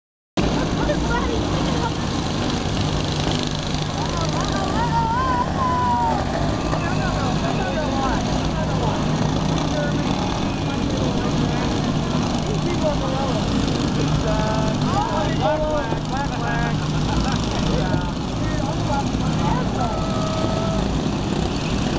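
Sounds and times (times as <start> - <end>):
lawn mower engines droning: 0.4 - 21.9
crowd shouting: 4.0 - 8.2, 19.4 - 21.2.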